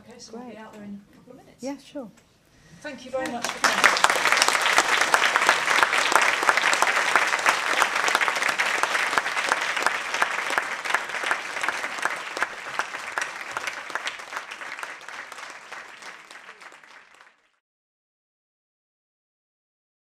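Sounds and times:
audience applauding: 3.2 - 17.6.

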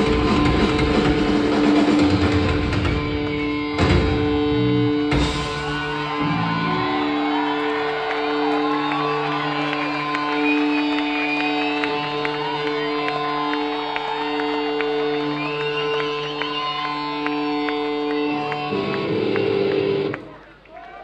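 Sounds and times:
guitar amp drone: 0.0 - 7.6, 8.2 - 20.2
crowd cheering: 0.0 - 21.0
rising whistles: 5.2 - 18.8.

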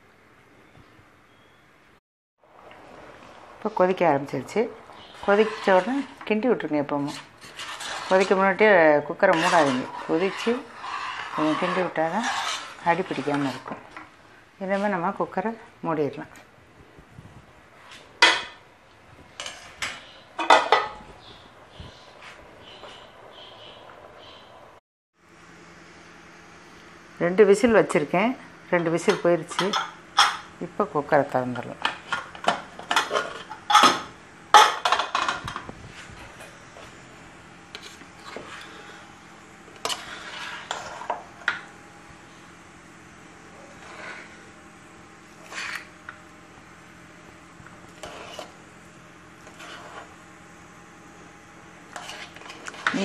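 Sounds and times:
ladle scraping rice in metal pot: 5.0 - 13.8, 37.7 - 39.1, 39.8 - 41.2, 43.7 - 44.5, 45.3 - 46.0, 47.9 - 48.6, 49.4 - 50.2, 51.9 - 53.0.

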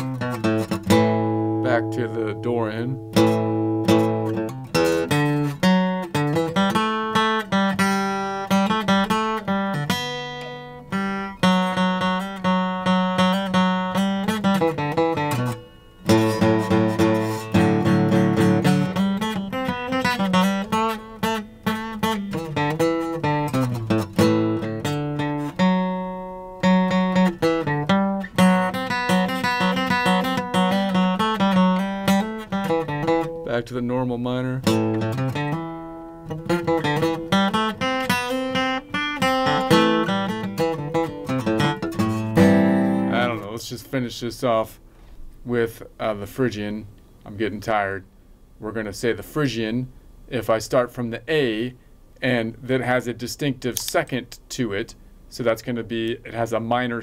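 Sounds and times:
fingerpicked acoustic guitar: 0.0 - 44.0.

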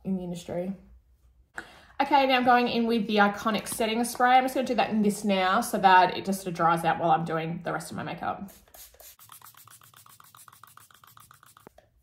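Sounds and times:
spray bottle pulsing hiss: 8.5 - 11.8.

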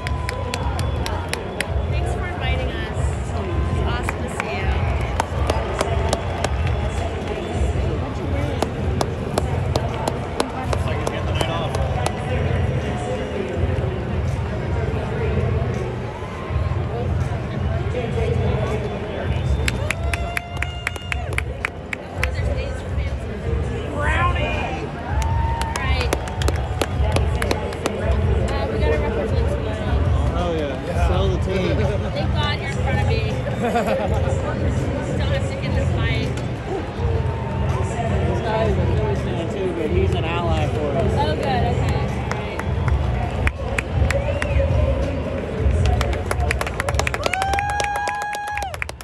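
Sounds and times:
people clapping: 0.0 - 12.6, 19.4 - 22.9, 25.0 - 29.1, 40.0 - 49.0
crowd chatter: 0.0 - 49.0.

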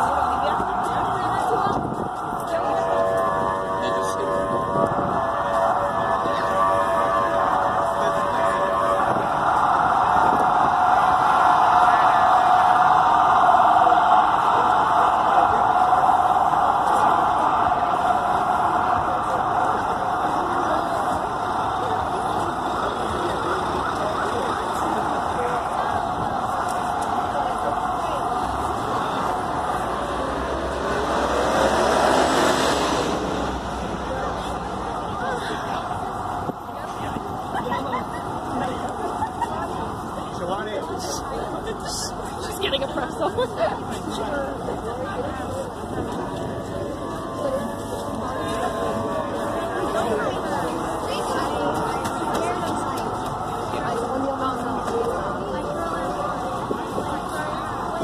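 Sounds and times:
crowd chatter: 0.0 - 58.0
street traffic: 0.0 - 58.0.

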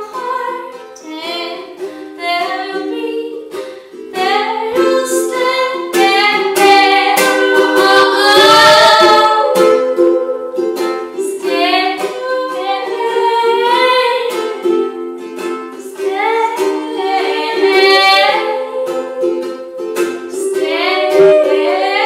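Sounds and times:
woman singing: 0.0 - 15.1, 15.7 - 22.0
strummed ukulele: 0.0 - 22.0.

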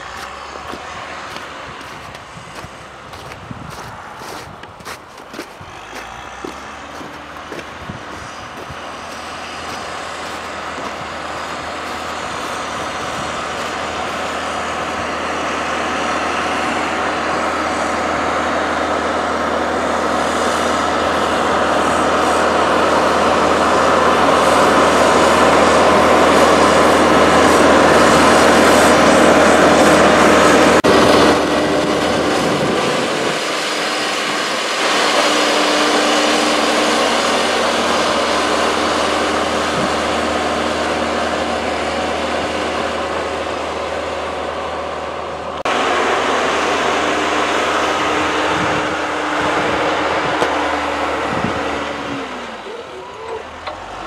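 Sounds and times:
diesel engine under load: 0.0 - 54.0.

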